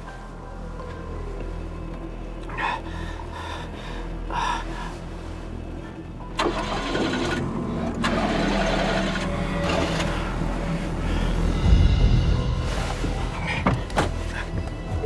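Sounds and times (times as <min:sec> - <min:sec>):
tense music with low drone: 0:00.0 - 0:15.0
car engine starting and running: 0:06.2 - 0:14.2.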